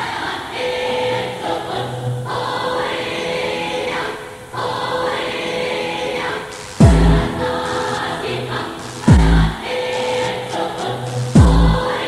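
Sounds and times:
choir-like pad: 0:00.0 - 0:12.0
electronic dance music: 0:06.2 - 0:12.0
deep booming drum hit: 0:06.8 - 0:07.2.

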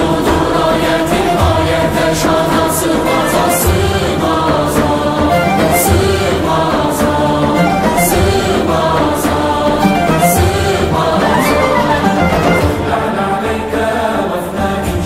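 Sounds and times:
male choir singing: 0:00.0 - 0:15.0
frame drum beats: 0:00.2 - 0:13.2
lutes and reed pipe: 0:01.2 - 0:04.5, 0:05.2 - 0:09.0, 0:09.8 - 0:13.3.

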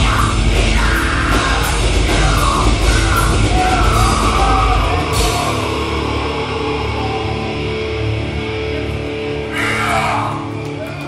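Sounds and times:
distorted electric guitars: 0:00.0 - 0:11.0
drums: 0:00.0 - 0:11.0
yelled vocals: 0:00.0 - 0:11.0.

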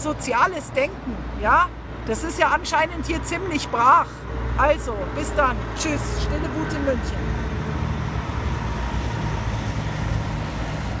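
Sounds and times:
road traffic: 0:00.0 - 0:11.0.

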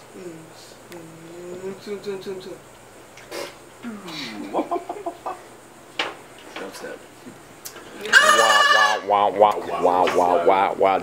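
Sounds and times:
person cackling laughter: 0:04.3 - 0:05.4.

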